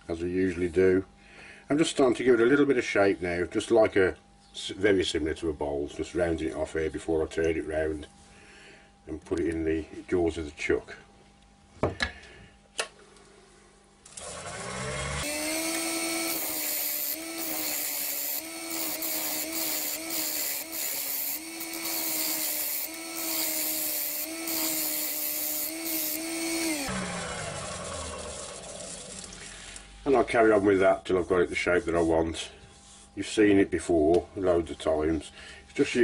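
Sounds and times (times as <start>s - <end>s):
lathe motor whine: 14.4s - 29.4s
hiss of tool cutting wood: 14.6s - 28.3s.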